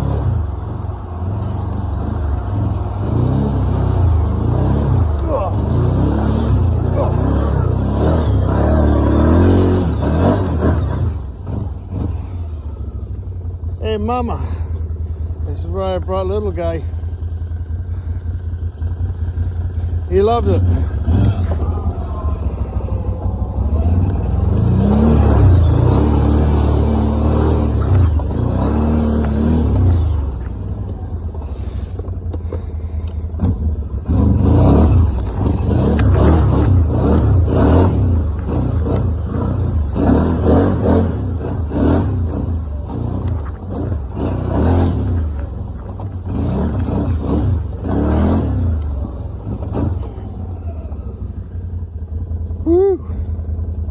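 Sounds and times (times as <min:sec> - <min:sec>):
atv engine revving: 0:00.0 - 0:53.9.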